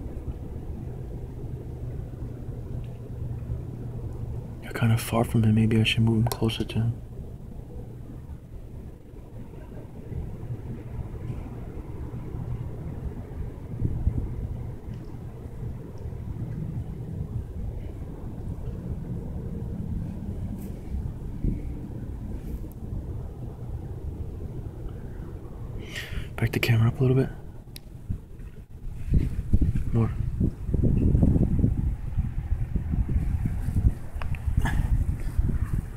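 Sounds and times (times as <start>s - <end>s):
wind buffeting microphone: 0.0s - 35.9s.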